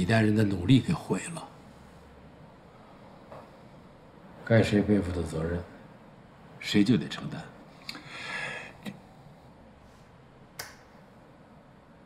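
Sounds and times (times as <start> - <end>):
sharp click: 10.6 - 10.9.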